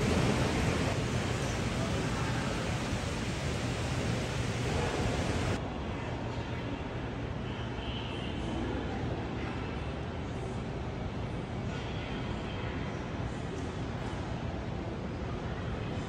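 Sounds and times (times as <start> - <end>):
airy rush: 0.0 - 5.6
low hum: 0.0 - 5.6
faint distant voices: 0.0 - 16.0.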